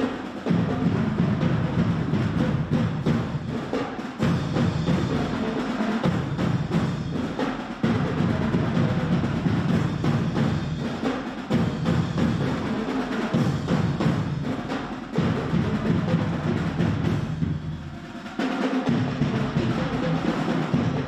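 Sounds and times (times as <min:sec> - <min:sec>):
marching drum line cadence: 0:00.0 - 0:21.0.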